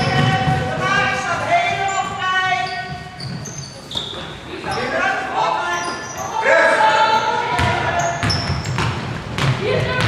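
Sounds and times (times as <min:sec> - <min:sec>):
shoes squeaking on hardwood: 0:00.0 - 0:05.1
voices echoing in gym: 0:00.0 - 0:10.0.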